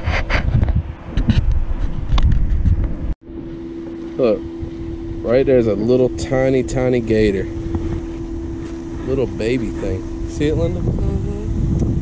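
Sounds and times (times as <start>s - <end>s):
steady low hum: 0.0s - 12.0s
wind buffeting microphone: 0.0s - 12.0s.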